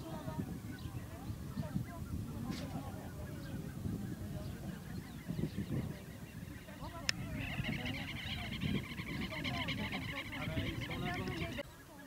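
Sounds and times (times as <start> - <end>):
geese calling: 0.1 - 12.0.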